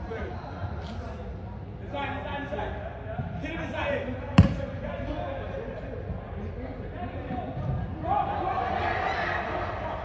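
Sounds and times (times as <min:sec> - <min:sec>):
soccer ball kicked thud: 0:04.4 - 0:04.8.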